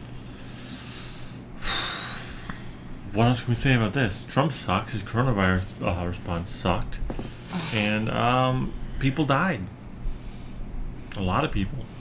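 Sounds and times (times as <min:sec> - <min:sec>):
heavy airy breath: 0:00.2 - 0:02.9, 0:10.0 - 0:10.7.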